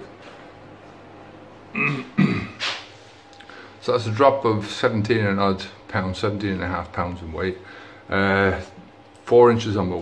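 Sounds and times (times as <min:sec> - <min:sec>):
man clearing throat and coughing: 0:01.7 - 0:02.8.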